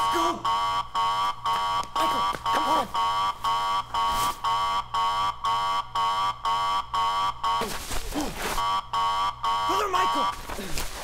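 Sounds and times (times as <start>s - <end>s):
electronic alarm buzzing in pulses: 0.0s - 10.6s.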